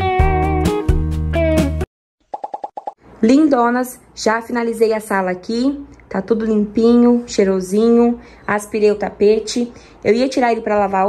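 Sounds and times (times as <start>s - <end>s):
cartoon popping sound effect: 2.2s - 3.0s
woman speaking: 3.2s - 11.0s.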